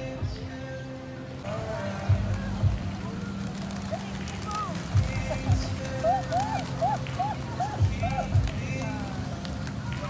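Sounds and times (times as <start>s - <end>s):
pigeons flapping and taking off: 1.5s - 10.0s.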